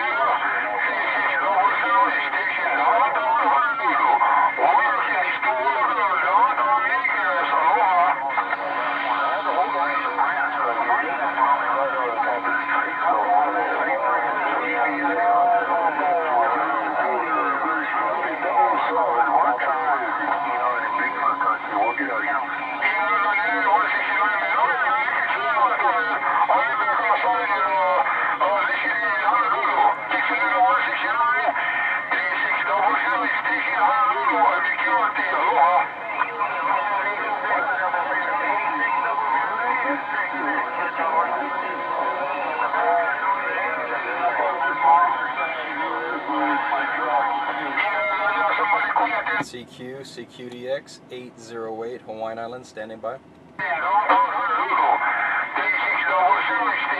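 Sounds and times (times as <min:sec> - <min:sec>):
radio voices talking over each other: 0:00.0 - 0:56.9.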